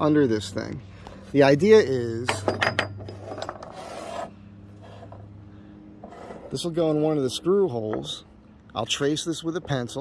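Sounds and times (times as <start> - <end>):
metal ring scraping on wooden boards: 2.2 - 5.3, 6.0 - 6.8.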